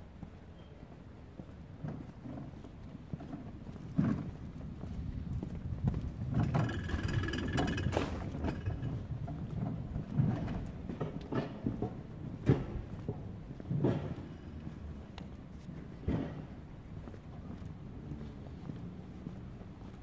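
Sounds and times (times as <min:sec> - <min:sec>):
footsteps on pavement: 0:00.0 - 0:07.2, 0:07.8 - 0:20.0.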